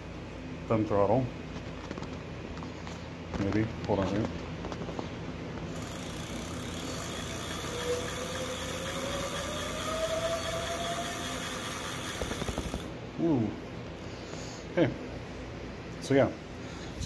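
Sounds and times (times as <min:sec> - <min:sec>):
electric hub motor whining: 0:05.7 - 0:13.0.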